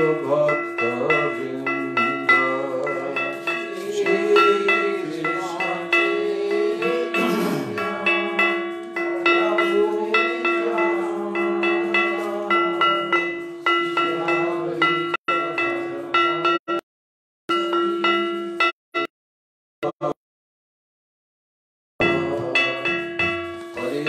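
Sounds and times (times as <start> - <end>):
steady held drone: 0.0 - 14.8
hand cymbals struck in rhythm: 0.0 - 16.8, 17.5 - 18.7, 22.0 - 24.0.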